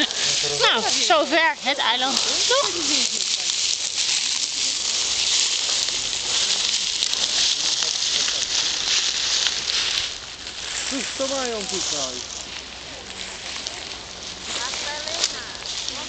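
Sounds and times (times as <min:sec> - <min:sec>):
faint crackles: 0:00.0 - 0:16.0
high hiss: 0:00.0 - 0:16.0.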